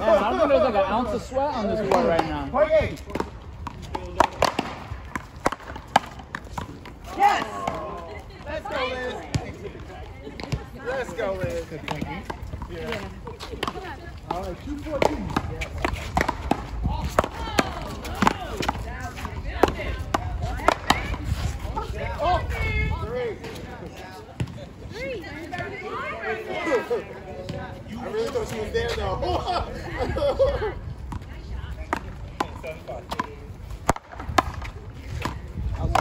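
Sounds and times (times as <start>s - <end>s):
voices: 0.0s - 36.0s
paddles smacking rubber ball: 3.1s - 7.9s, 13.6s - 21.2s.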